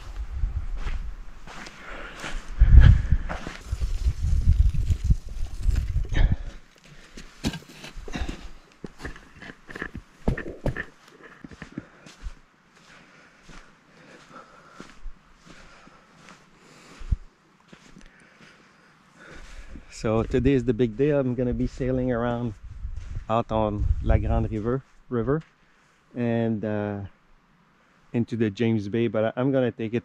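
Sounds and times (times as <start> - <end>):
low rumble on microphone: 0.0 - 1.6, 2.2 - 6.6, 19.6 - 25.4
footsteps on wet sand: 0.0 - 25.6.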